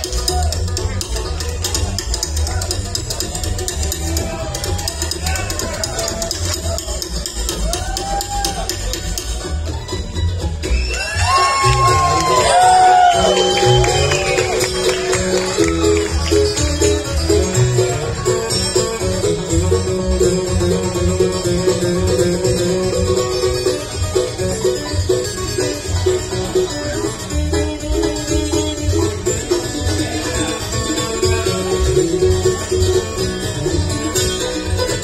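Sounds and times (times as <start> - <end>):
bluegrass band playing: 0.0 - 35.0
fast banjo rolls: 0.0 - 35.0.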